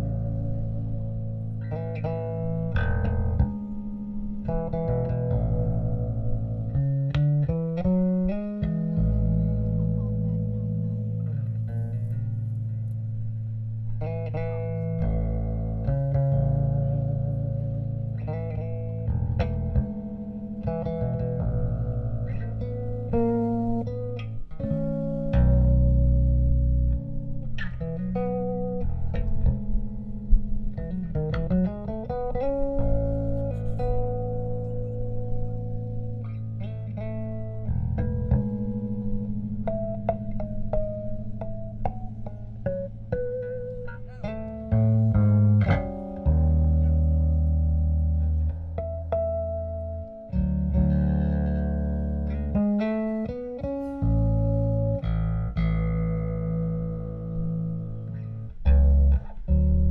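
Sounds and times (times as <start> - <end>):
electric bass low notes: 0.0 - 59.9
guitar: 0.0 - 59.9.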